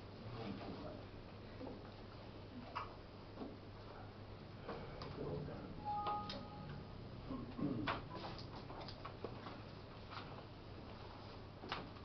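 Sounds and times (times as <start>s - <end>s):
two-tone computer alert chime: 5.8s - 6.9s.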